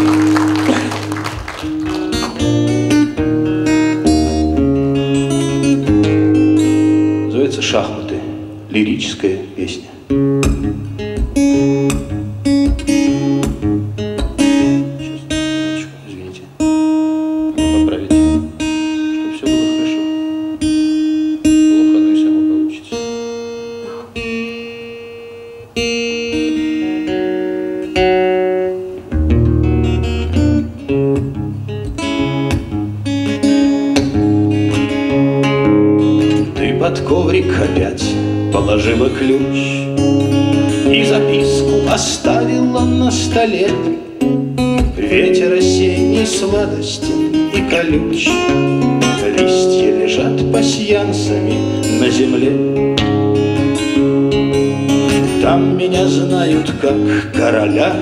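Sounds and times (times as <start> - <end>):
classical guitar fingerpicked melody: 1.4 - 8.7, 10.0 - 58.0.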